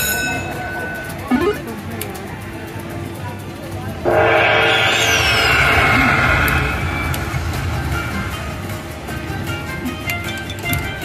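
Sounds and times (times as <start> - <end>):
slot machine chiming tones: 0.0 - 1.9.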